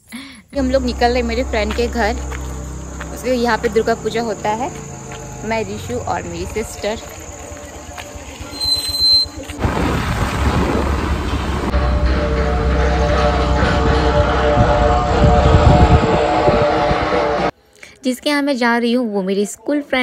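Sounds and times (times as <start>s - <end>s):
brief high squeal: 8.5s - 9.4s
wind rumble on microphone: 9.4s - 11.8s, 13.1s - 17.5s
music playing: 9.4s - 17.5s.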